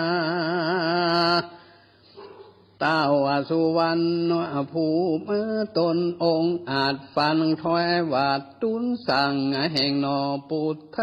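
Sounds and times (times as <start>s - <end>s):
monk chanting a sermon: 2.8s - 11.0s.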